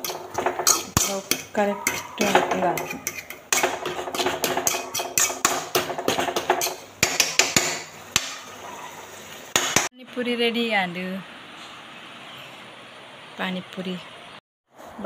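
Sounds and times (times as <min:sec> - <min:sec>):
spoon scraping metal pan: 0:00.0 - 0:08.6.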